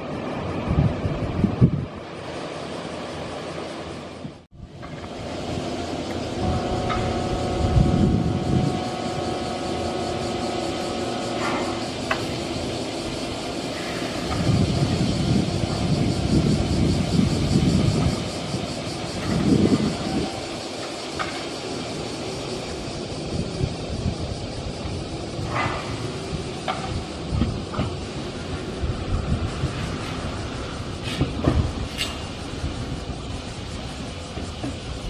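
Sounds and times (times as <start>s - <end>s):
train rumbling: 0.0s - 35.0s
steady held tones: 6.0s - 13.8s.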